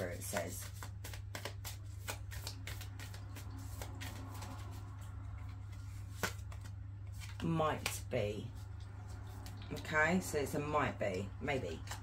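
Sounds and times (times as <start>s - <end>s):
cards being shuffled: 0.0s - 10.0s, 11.5s - 12.0s.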